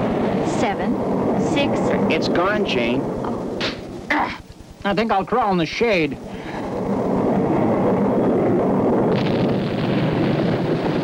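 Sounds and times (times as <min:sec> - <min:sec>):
rumbling explosion: 0:00.0 - 0:04.1, 0:06.2 - 0:11.0.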